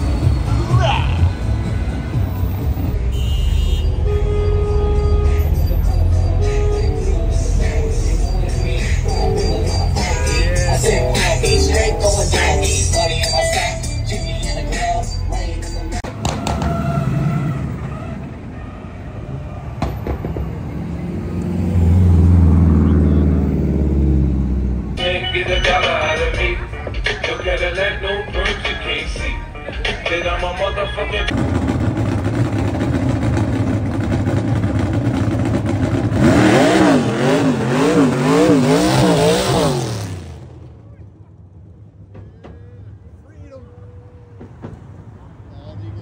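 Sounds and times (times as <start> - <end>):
rumble of traffic engines: 0.0 - 46.0
vehicle engine passing by: 16.1 - 25.0.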